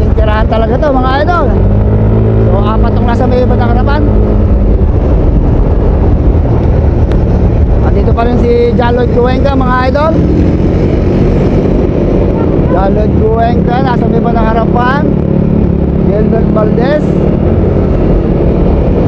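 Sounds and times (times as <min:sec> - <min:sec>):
vehicle engine running: 0:00.0 - 0:19.0
wind rushing over microphone: 0:00.0 - 0:19.0
man's voice: 0:07.8 - 0:10.2, 0:12.7 - 0:15.2, 0:16.0 - 0:17.2.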